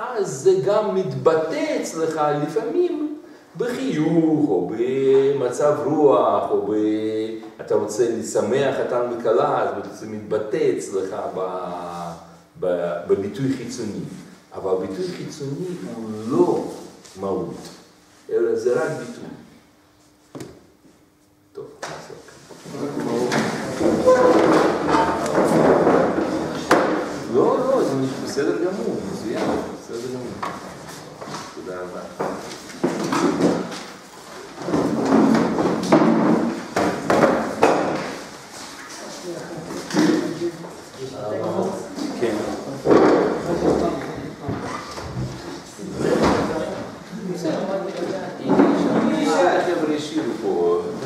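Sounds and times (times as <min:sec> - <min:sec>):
people talking: 0:00.0 - 0:19.4, 0:21.6 - 0:32.4, 0:39.0 - 0:44.8, 0:45.7 - 0:51.0
knocks on a desk: 0:23.3 - 0:27.1, 0:34.8 - 0:38.1.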